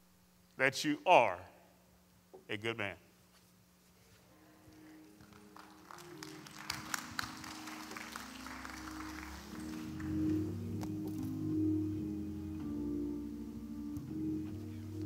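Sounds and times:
piano playing slow chords: 5.0 - 15.0.

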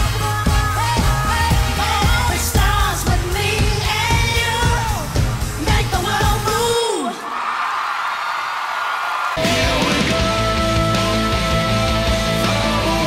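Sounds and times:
woman singing lead vocal: 0.0 - 7.3, 9.4 - 13.0
crowd cheering and screaming: 6.5 - 10.5.

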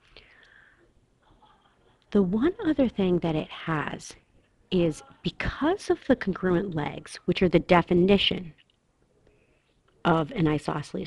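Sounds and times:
soft breath: 0.0 - 2.0, 9.2 - 9.8.

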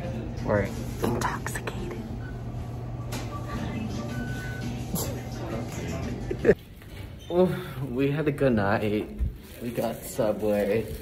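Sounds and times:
low room hum: 0.0 - 10.8.

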